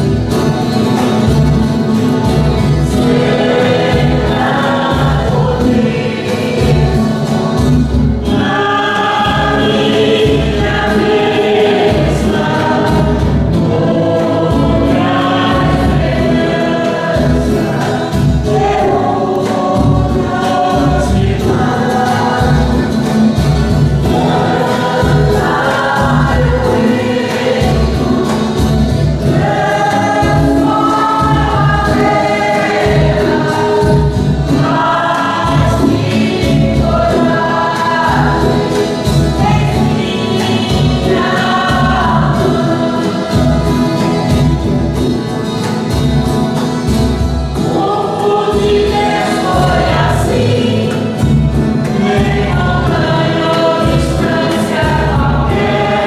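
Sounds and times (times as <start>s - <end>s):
choir singing a hymn: 0.0s - 56.0s
instrumental accompaniment: 0.0s - 56.0s.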